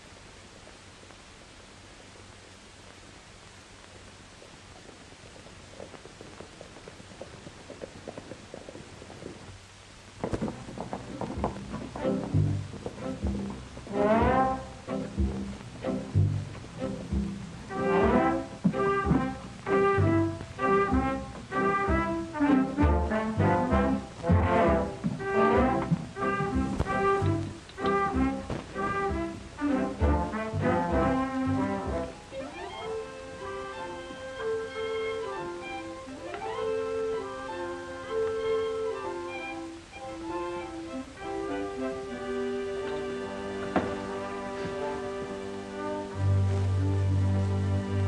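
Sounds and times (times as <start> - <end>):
bass line: 11.4 - 32.2
orchestral brass music: 12.0 - 48.0.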